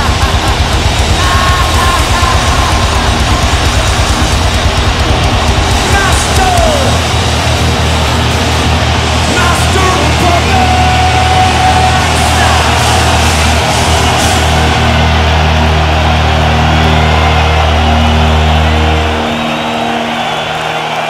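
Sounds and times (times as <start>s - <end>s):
distorted guitar and bass chord: 0.0s - 20.4s
crowd cheering: 0.0s - 21.0s.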